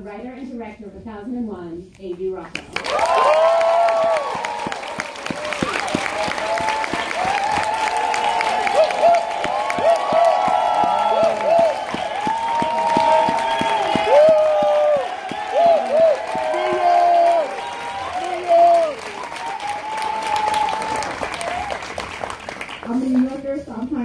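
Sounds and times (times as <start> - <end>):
audience clapping: 2.5 - 23.6
high whoops and shouts: 2.8 - 21.8.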